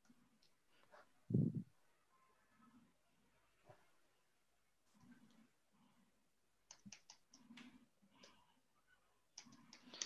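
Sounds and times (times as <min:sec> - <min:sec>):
computer keyboard clicks: 0:06.7 - 0:07.6, 0:09.4 - 0:10.0.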